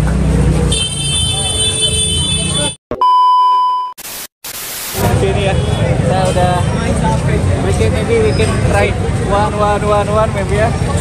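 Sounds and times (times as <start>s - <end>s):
street crowd bustle: 0.0s - 2.8s, 4.9s - 11.0s
electronic beep tone: 2.9s - 4.0s
static hiss bursts: 4.0s - 5.1s.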